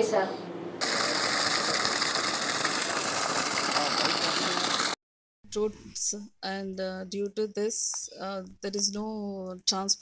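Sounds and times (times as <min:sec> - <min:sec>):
machinery rattling: 0:00.8 - 0:05.0
water gushing from a pipe: 0:00.8 - 0:05.0.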